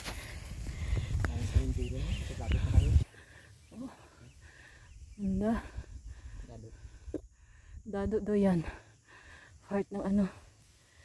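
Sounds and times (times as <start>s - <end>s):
high steady insect buzz: 0.0s - 11.0s.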